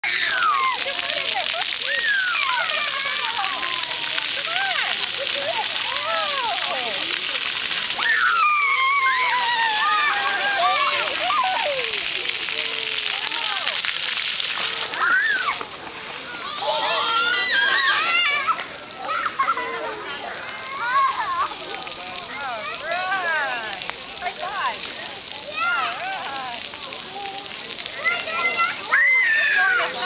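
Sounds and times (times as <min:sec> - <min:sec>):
fountain jet spraying: 0:00.1 - 0:30.0.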